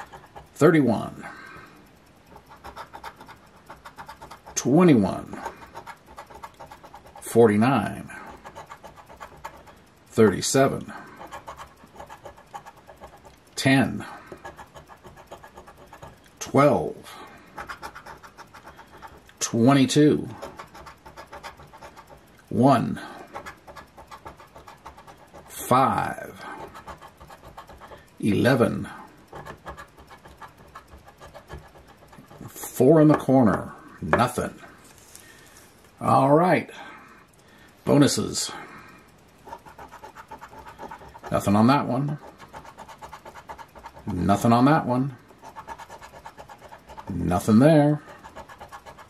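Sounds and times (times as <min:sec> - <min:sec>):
coin scratching paper ticket: 0:00.0 - 0:00.7, 0:02.3 - 0:09.8, 0:10.4 - 0:17.0, 0:17.6 - 0:33.2, 0:39.4 - 0:49.0.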